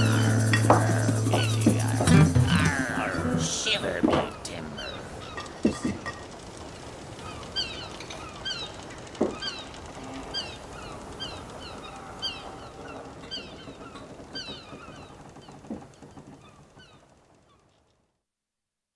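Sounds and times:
high falling bird chirps: 0:07.1 - 0:15.7
lower bird calls: 0:07.1 - 0:17.7.

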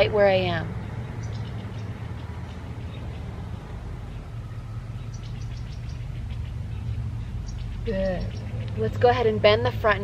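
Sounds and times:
steady low rumble: 0:00.0 - 0:10.0
high bird chirps: 0:00.8 - 0:03.4, 0:04.0 - 0:09.0.

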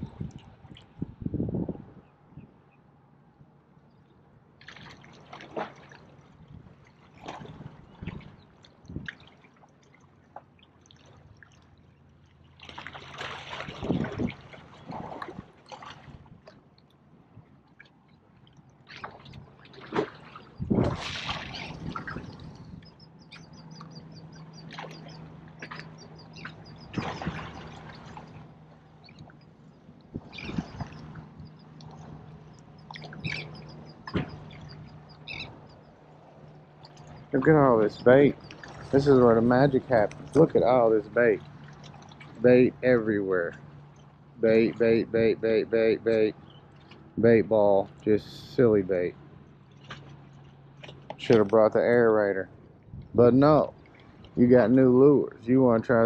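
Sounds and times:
waves lapping against rocks: 0:04.6 - 0:16.6, 0:17.8 - 0:29.5, 0:36.1 - 0:44.8.

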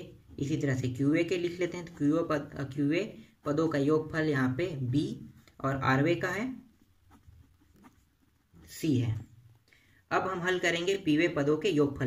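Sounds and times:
person speaking: 0:00.0 - 0:12.0
pen scratching on paper: 0:06.0 - 0:09.3.

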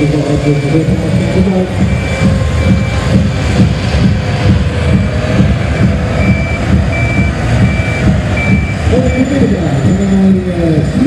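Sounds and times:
reversing alarm beeping: 0:00.0 - 0:03.7, 0:04.8 - 0:10.6
diesel tractor engine rumbling: 0:00.0 - 0:11.0.

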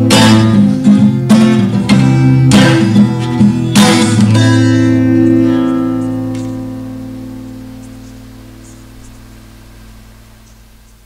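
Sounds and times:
song chord from cassette: 0:00.0 - 0:10.5
tape hiss: 0:00.0 - 0:11.0.

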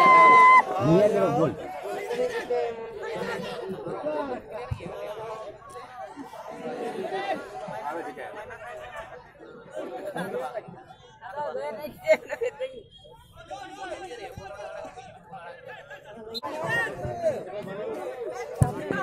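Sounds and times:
spectators chattering: 0:00.0 - 0:19.0
laughter: 0:12.0 - 0:12.8.

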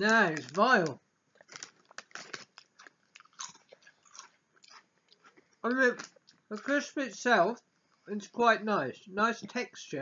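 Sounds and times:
crunching and chewing crisps: 0:00.0 - 0:07.0.

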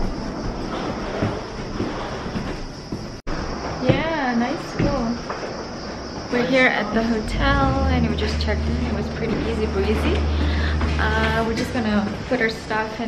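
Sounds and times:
suitcase wheels rolling: 0:00.0 - 0:03.6, 0:04.8 - 0:13.0
footsteps on hard floor: 0:00.0 - 0:13.0.

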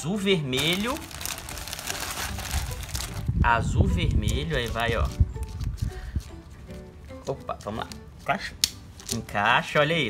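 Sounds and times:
plastic bag crinkling: 0:00.5 - 0:03.4, 0:04.0 - 0:05.9.

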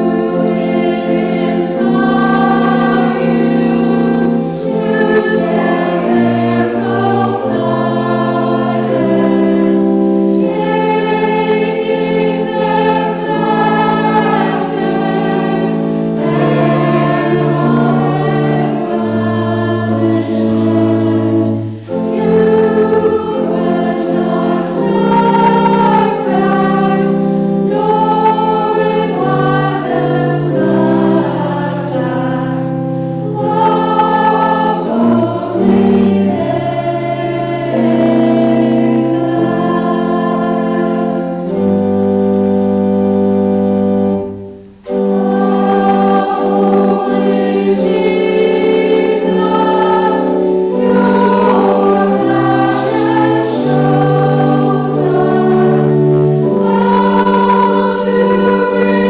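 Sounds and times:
church choir singing: 0:00.0 - 0:59.0.

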